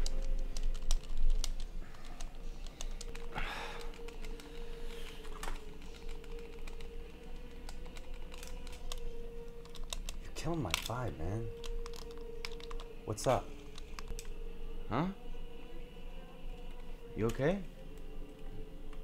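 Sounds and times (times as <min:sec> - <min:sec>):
game controller buttons clicking: 0:00.0 - 0:04.6, 0:05.2 - 0:09.0, 0:09.6 - 0:12.9.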